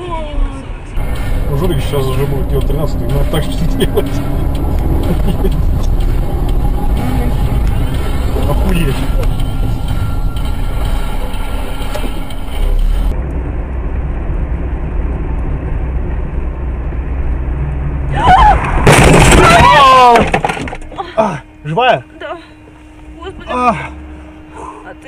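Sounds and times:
car engine and road rumble: 0.0s - 25.0s.

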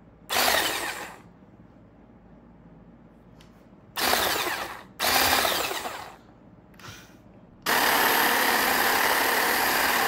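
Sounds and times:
milk frother whisk whirring: 7.7s - 10.0s.

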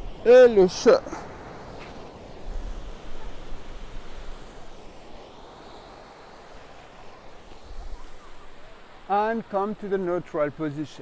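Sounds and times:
wind buffeting microphone: 0.0s - 5.8s
ocean surf washing onto beach: 0.0s - 11.0s.

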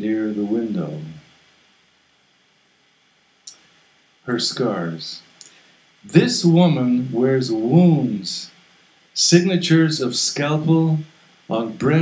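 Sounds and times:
man speaking: 0.0s - 1.2s, 4.3s - 5.3s, 6.1s - 8.6s, 9.2s - 12.0s
faint room hiss: 0.0s - 12.0s.

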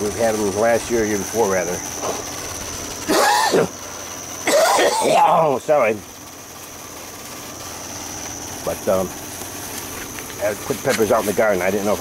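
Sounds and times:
man coughing: 3.1s - 3.7s, 4.4s - 5.4s.

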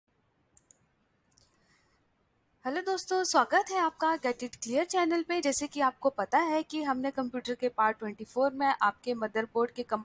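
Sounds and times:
computer mouse clicks: 0.5s - 1.6s.

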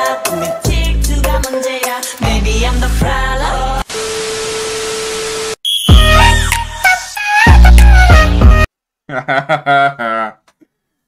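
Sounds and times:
mid-pitched beep tone: 5.6s - 6.3s.

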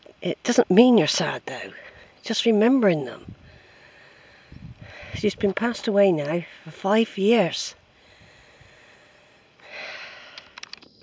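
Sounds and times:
loud breath close to microphone: 3.4s - 5.3s, 7.9s - 10.6s.

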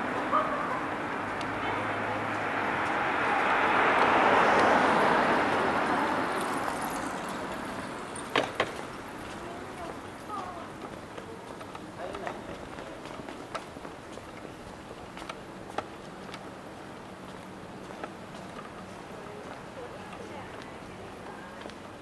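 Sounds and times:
vehicle passing by: 0.0s - 9.9s
faint voices: 0.0s - 22.0s.

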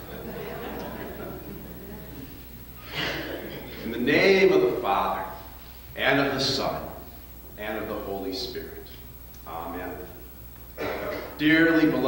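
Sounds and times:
faint room murmur: 0.0s - 12.0s.

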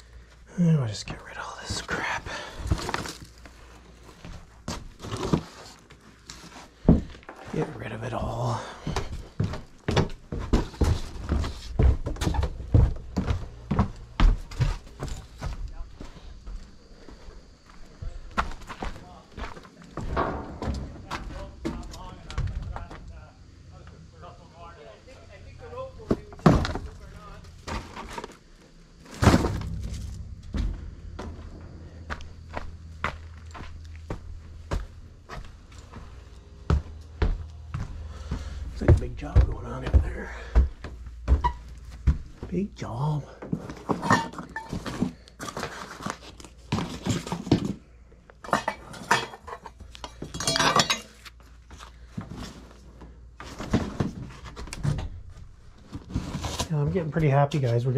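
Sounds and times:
footsteps on stairs: 6.4s - 7.5s, 8.5s - 23.1s, 29.2s - 42.6s
boxes thudding and knocking: 8.9s - 15.6s, 20.0s - 22.9s, 26.0s - 36.9s, 43.4s - 47.8s, 52.1s - 56.7s
loud crashes into metal bin: 20.0s - 21.3s, 29.1s - 32.5s.

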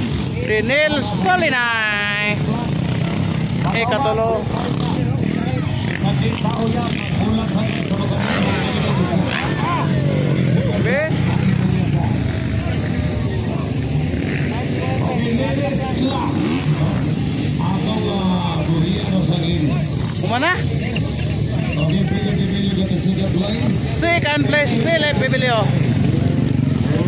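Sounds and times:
dirt bike engines revving: 0.0s - 27.0s
voices in background: 0.0s - 27.0s.

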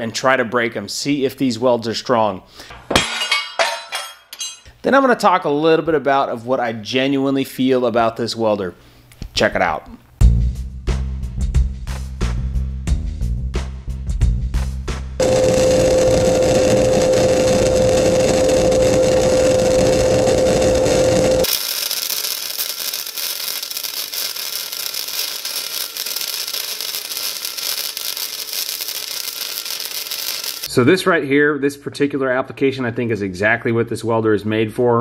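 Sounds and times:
welder arc hissing and crackling: 15.2s - 30.7s.

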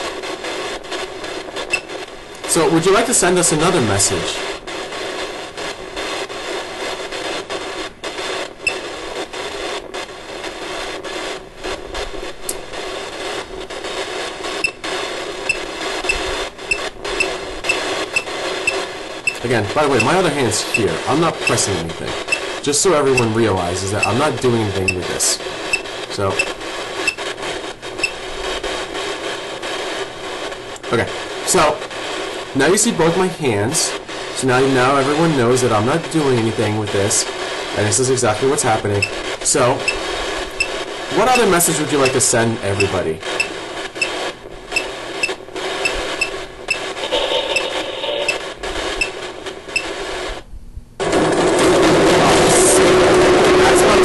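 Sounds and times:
static hiss with crackles: 0.0s - 54.0s
steady noise with low hum: 0.0s - 54.0s.

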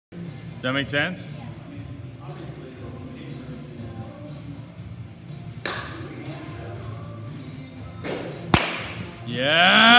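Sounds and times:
bat hitting a ball: 5.6s - 6.0s, 8.0s - 9.1s.

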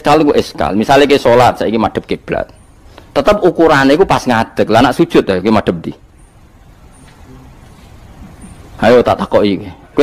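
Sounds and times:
low hum and faint hiss: 0.0s - 10.0s.

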